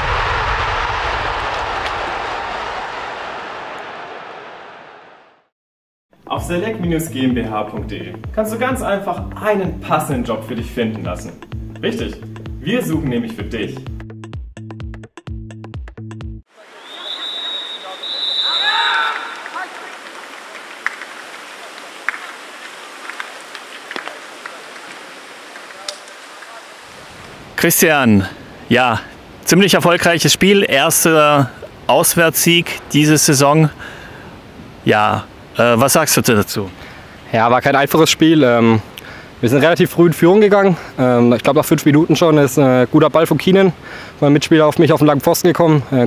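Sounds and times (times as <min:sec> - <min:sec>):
long noisy whoosh: 0:00.0 - 0:05.5
light rain hiss: 0:16.5 - 0:45.2
rain drops ticking: 0:19.0 - 0:27.4.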